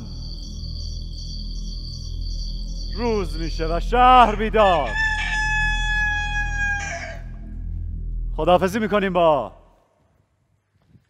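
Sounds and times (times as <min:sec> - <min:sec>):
low background drone: 0:00.0 - 0:09.8
rooster crowing: 0:04.7 - 0:07.4.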